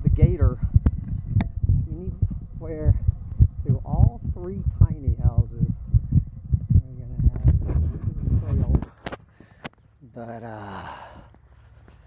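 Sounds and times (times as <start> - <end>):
wind rumbling on microphone: 0.0 - 9.8
camera handling noise: 7.4 - 9.9.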